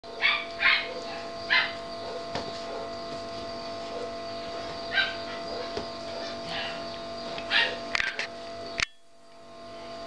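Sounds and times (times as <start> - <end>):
puppies yipping: 0.1 - 8.3.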